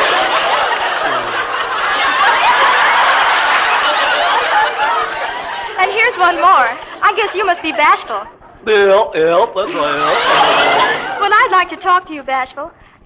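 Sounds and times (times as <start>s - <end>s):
studio audience laughing: 0.0s - 8.4s, 9.6s - 11.7s.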